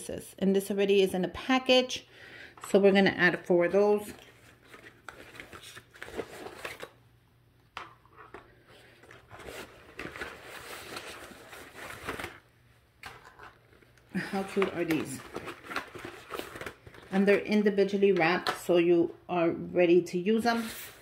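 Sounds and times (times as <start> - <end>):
plastic packages rustling: 4.0 - 7.0, 8.0 - 17.6
soft clicks of packages set down: 13.0 - 17.2.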